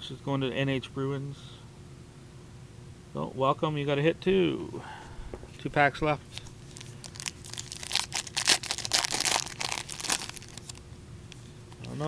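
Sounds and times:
wrapper being torn and crinkled: 0:06.3 - 0:10.8.

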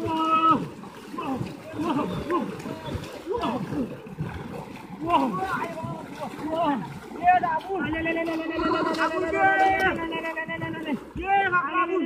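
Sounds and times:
people calling and shouting: 0:00.0 - 0:12.0
water churning and splashing: 0:00.0 - 0:12.0.

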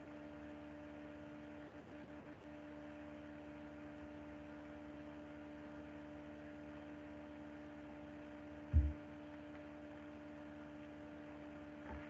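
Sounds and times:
electrical hum: 0:00.0 - 0:12.0
low thump: 0:08.7 - 0:09.0.

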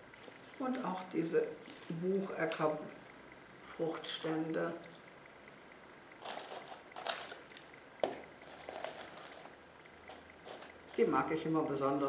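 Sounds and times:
dry husks rustling and crackling: 0:00.0 - 0:03.0, 0:06.1 - 0:11.5.

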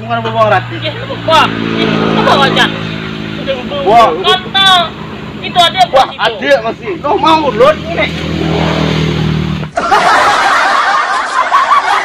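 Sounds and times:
laughter: 0:09.7 - 0:12.0.

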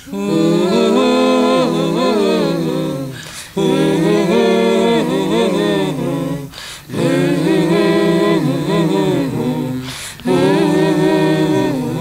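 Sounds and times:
voices singing unaccompanied: 0:00.0 - 0:12.0.

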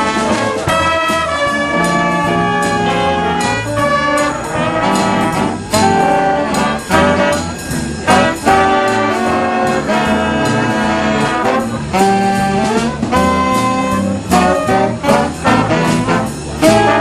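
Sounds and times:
jazz big band playing: 0:00.0 - 0:17.0
loud ensemble hits: 0:00.0 - 0:17.0.

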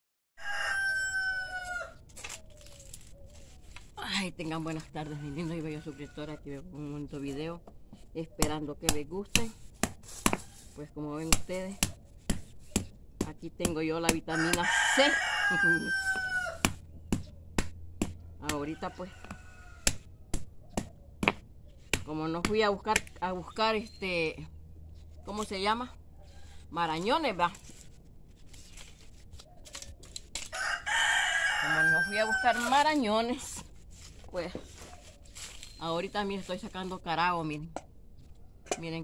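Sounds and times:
rooster crowing: 0:00.4 - 0:02.0, 0:14.3 - 0:16.6, 0:18.7 - 0:19.9, 0:30.5 - 0:32.7.

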